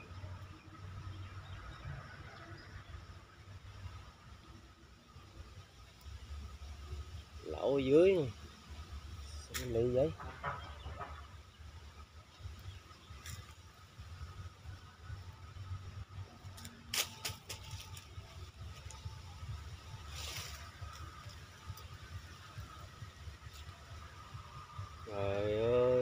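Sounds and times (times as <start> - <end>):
low steady rumble: 0.0 - 26.0.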